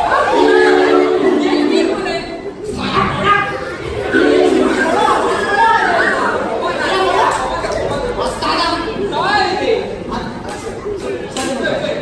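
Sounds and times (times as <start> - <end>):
people talking over microphones: 0.0 - 12.0.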